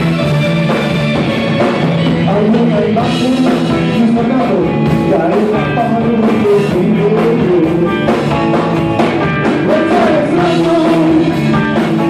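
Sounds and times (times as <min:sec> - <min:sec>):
bass guitar: 0:00.0 - 0:12.0
combo organ: 0:00.0 - 0:12.0
drum kit: 0:00.0 - 0:12.0
electric guitar: 0:00.0 - 0:12.0
person singing: 0:02.1 - 0:08.2, 0:09.4 - 0:12.0.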